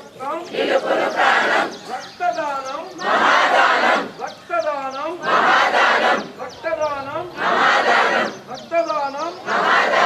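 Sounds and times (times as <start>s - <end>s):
group shouting in unison: 3.0s - 4.1s, 5.2s - 6.3s, 7.4s - 8.4s, 9.5s - 10.0s.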